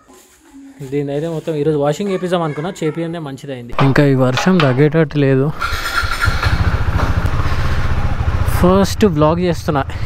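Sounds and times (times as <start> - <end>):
man speaking: 0.8 - 5.6, 8.5 - 10.0
motorcycle engine at low revs: 5.5 - 10.0.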